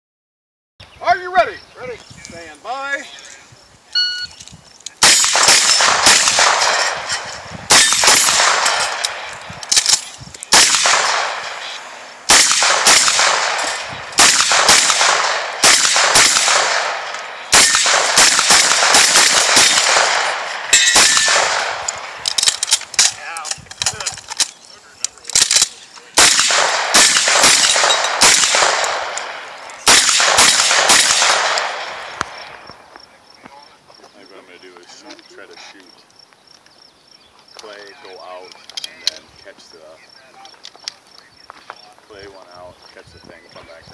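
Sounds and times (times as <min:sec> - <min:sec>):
rifle shots: 0:05.0 - 0:24.1, 0:25.3 - 0:32.8
bullets clanging on steel targets: 0:05.0 - 0:24.5, 0:25.3 - 0:31.6.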